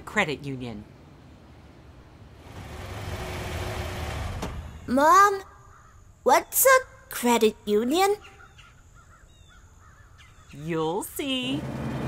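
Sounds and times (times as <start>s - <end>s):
faint bird calls: 4.7s - 7.0s, 7.9s - 11.1s.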